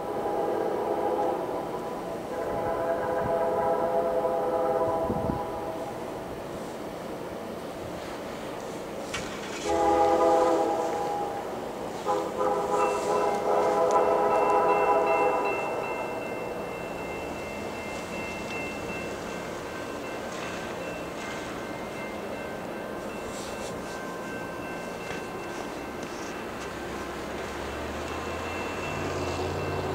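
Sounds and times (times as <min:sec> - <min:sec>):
locomotive air horn blasts: 0:00.0 - 0:01.6, 0:02.3 - 0:06.0, 0:09.5 - 0:15.8
train running: 0:00.0 - 0:29.9.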